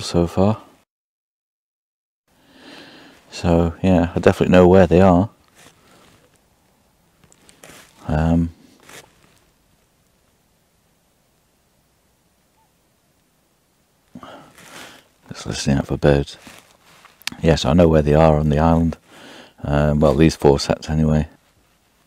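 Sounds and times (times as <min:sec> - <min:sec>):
faint soft hiss: 0:02.4 - 0:22.0.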